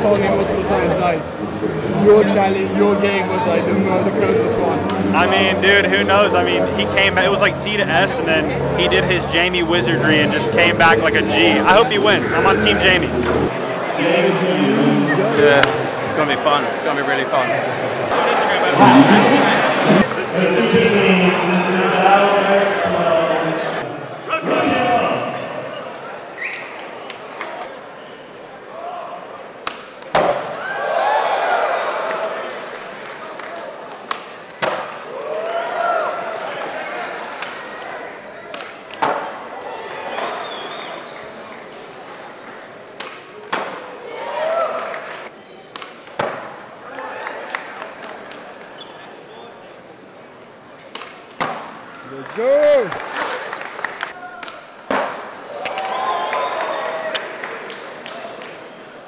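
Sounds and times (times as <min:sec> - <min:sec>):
crowd voices reacting: 0:00.0 - 0:26.2
spectators shouting: 0:18.0 - 0:20.1.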